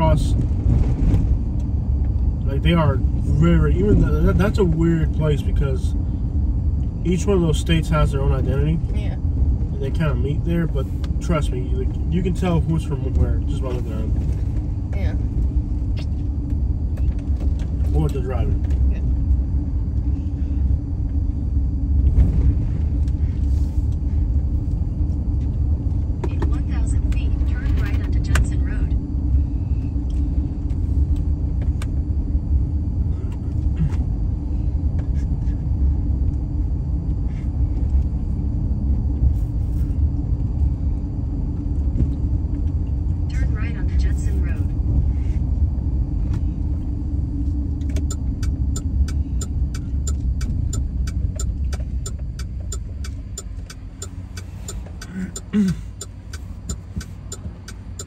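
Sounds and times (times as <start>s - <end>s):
car engine and tyres rumbling: 0.0s - 58.0s
quick regular ticking: 48.0s - 58.0s.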